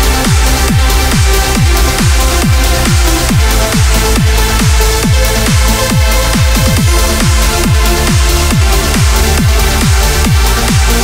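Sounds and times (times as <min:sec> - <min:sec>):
trance music: 0:00.0 - 0:11.0.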